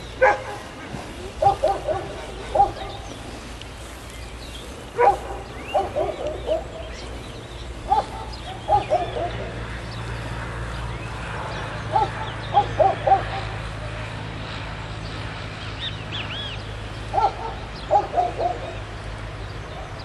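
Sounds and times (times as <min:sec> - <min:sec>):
birds calling: 0:00.0 - 0:20.0
steady low hum: 0:00.0 - 0:20.0.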